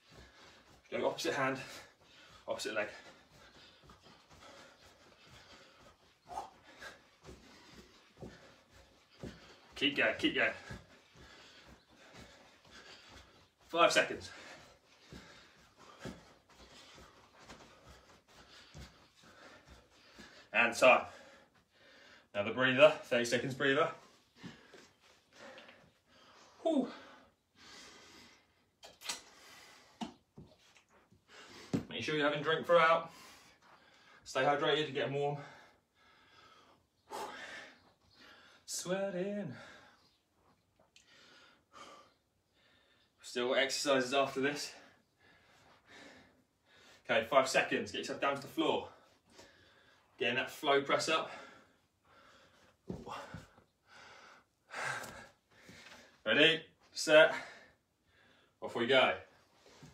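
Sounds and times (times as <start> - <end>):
soft footfalls on a rug: 0.0 - 21.4, 52.8 - 53.6
man breathing heavily: 0.0 - 23.1, 23.8 - 31.9, 32.9 - 34.3, 35.2 - 43.3, 44.4 - 47.1, 48.6 - 58.6.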